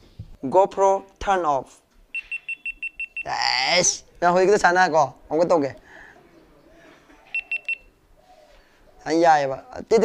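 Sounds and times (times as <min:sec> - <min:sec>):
camera short high beeps: 0:02.2 - 0:03.2, 0:07.3 - 0:07.9.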